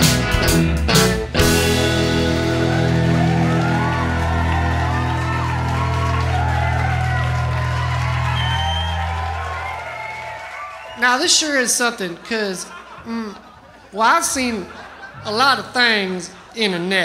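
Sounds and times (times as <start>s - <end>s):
rock band chord ringing out: 0.0s - 9.6s
crowd cheers and whoops: 2.2s - 11.1s.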